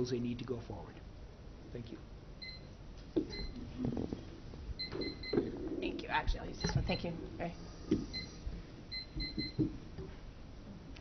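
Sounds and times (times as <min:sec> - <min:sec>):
microphone handling thumps: 0:03.1 - 0:07.2, 0:07.8 - 0:10.2.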